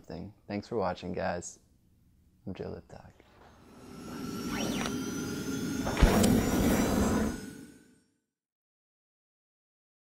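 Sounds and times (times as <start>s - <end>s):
sharp hit: 3.4s - 8.0s
rushing whoosh: 3.5s - 8.0s.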